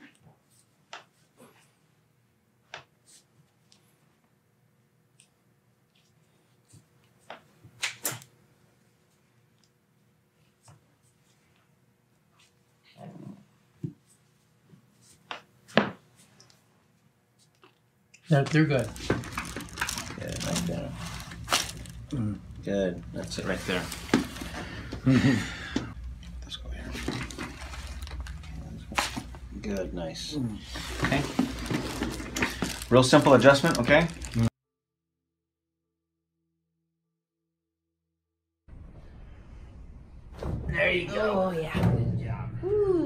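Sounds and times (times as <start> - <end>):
person laughing: 24.9 - 25.9.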